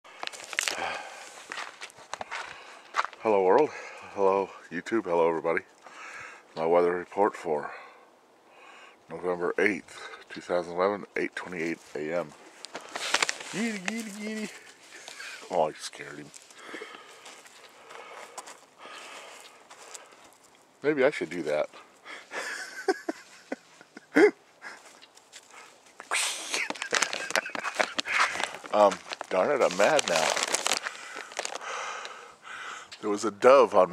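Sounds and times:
footsteps crunching on gravel: 0.1s - 3.8s, 11.5s - 21.7s, 24.8s - 31.7s.

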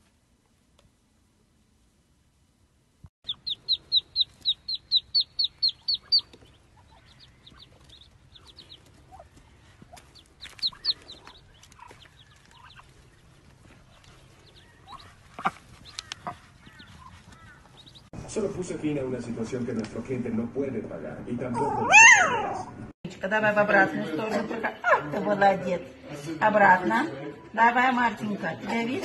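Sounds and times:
ducklings peeping: 3.2s - 18.1s.

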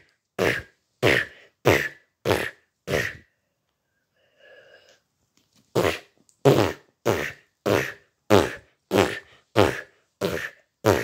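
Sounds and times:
fart noises: 0.4s - 3.3s, 5.7s - 11.0s.

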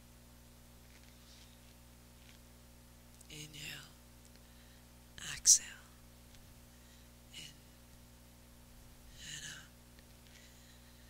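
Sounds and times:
woman breathing: 4.4s - 4.9s, 6.7s - 7.8s, 10.3s - 11.0s.

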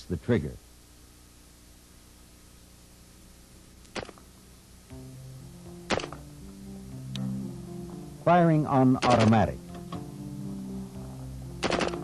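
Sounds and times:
low sustained music notes: 4.3s - 12.0s
sharp clicks: 9.0s - 9.4s, 11.6s - 12.0s.

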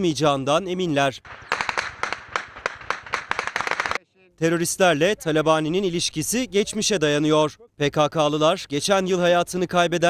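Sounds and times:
rifle gunfire: 1.3s - 4.0s.

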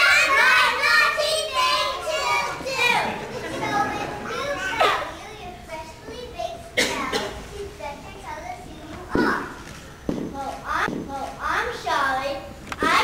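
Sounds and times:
young children speaking: 0.0s - 13.0s.

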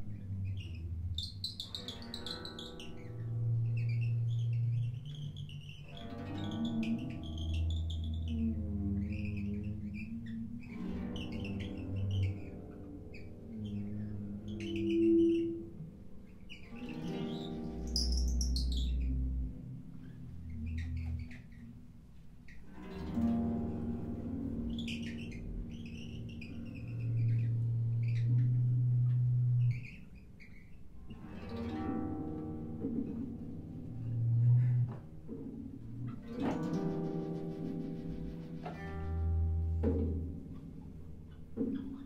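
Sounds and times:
piano: 0.0s - 42.0s
percussion: 35.0s - 42.0s.

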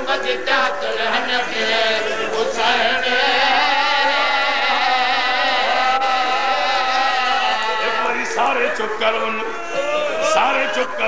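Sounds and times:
men chanting: 0.0s - 11.0s.

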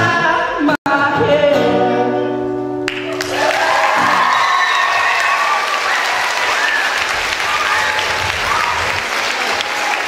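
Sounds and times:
man singing: 0.0s - 2.5s
acoustic guitar: 0.0s - 4.5s.

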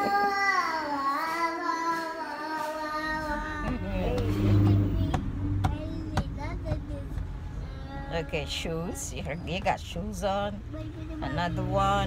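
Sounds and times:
toddler singing: 0.0s - 8.5s
car cabin rumble: 3.3s - 12.0s.

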